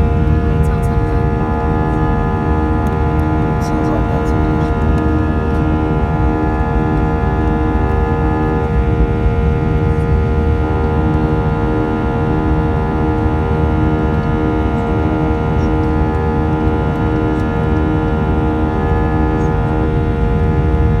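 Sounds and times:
jet engines droning in cabin: 0.0s - 21.0s.

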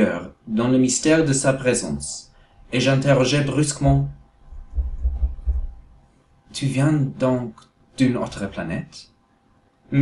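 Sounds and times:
soft thumps: 3.8s - 5.8s.

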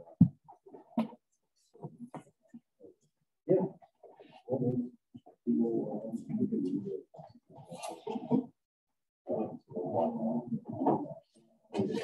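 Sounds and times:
muffled voices: 3.5s - 8.6s, 9.3s - 12.0s.

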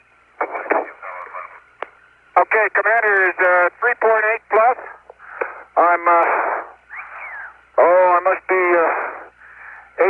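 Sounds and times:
radio static: 0.0s - 1.6s, 2.3s - 9.4s
faint voice over radio: 5.8s - 9.3s.

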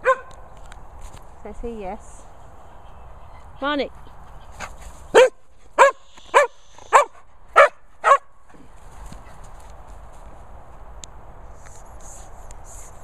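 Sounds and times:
dog barking: 0.0s - 0.3s, 5.1s - 8.3s.

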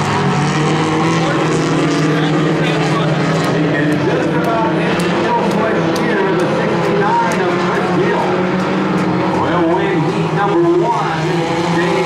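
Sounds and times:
race car engines at speed: 0.0s - 12.0s
person talking: 3.6s - 8.5s.

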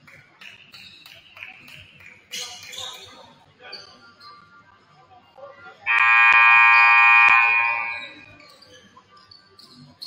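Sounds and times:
scoreboard horn buzzing: 5.9s - 8.3s.

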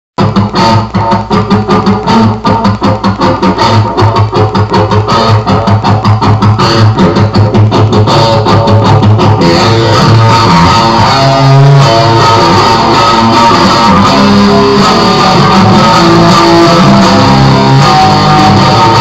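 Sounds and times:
electric guitar picking notes: 0.2s - 19.0s.

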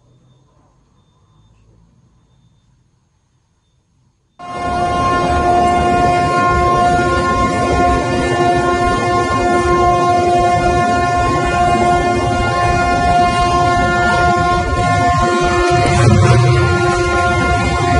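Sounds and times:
ship horn blast: 4.4s - 17.9s.

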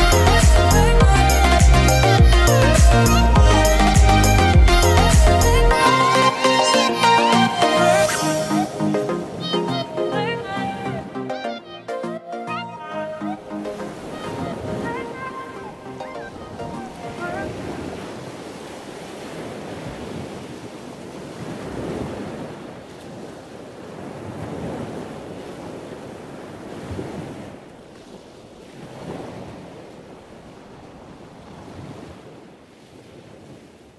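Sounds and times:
wind: 0.0s - 33.9s
waves washing onto beach: 13.5s - 33.9s.

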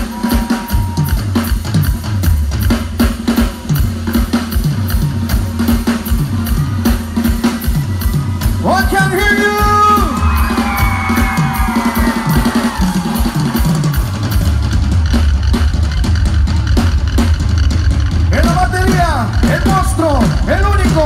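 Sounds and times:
band playing over pa: 0.0s - 21.0s
drum kit and bass beat: 0.0s - 21.0s.

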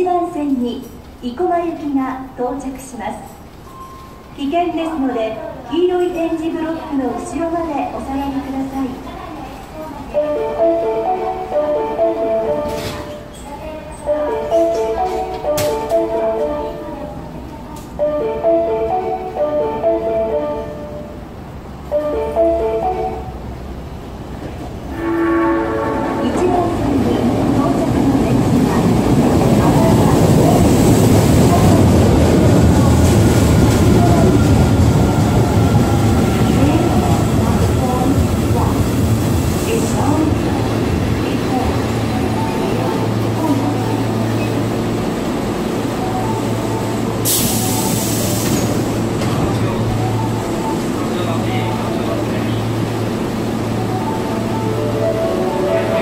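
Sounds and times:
train low hum: 0.0s - 56.0s
train rumbling and braking: 0.0s - 56.0s
train horn blast: 24.9s - 26.8s
air hiss of doors opening: 47.2s - 49.7s.

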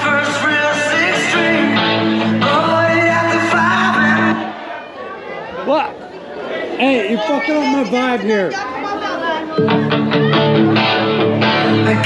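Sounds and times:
party music: 0.0s - 5.0s, 6.8s - 12.0s
people talking and chattering: 0.0s - 12.0s.

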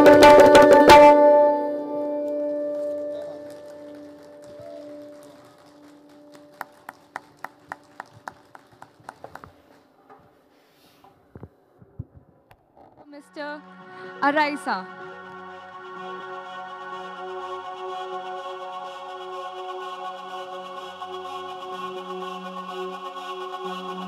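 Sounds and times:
recorded music: 0.0s - 6.9s, 13.2s - 24.0s
handclaps: 2.2s - 9.7s.

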